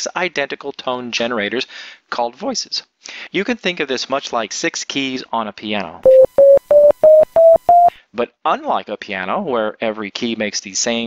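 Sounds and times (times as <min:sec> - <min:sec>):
rising synthesizer beeps: 0:06.1 - 0:07.9.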